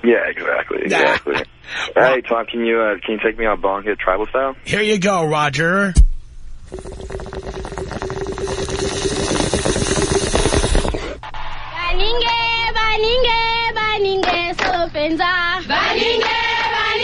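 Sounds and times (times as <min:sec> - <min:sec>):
water bubbling through a bong: 0:06.6 - 0:11.2.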